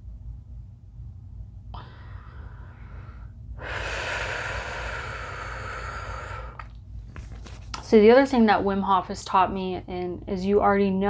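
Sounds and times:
woman breathing: 1.7 - 6.8.

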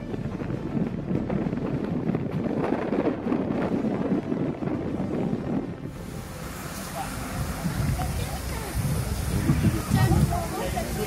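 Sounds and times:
railway coach rumble and rattle: 0.0 - 11.0
wind on microphone: 0.0 - 11.0
hissy outdoor sound: 5.0 - 11.0.

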